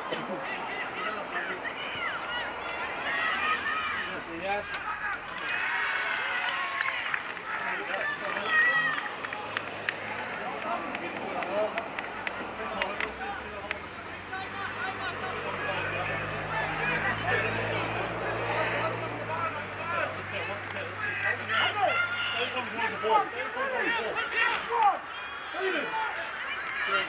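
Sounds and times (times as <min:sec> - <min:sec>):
voices shouting and calling: 0:00.0 - 0:27.0.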